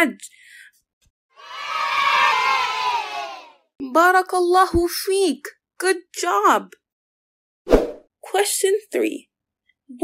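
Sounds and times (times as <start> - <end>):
children cheering: 1.4 - 3.7.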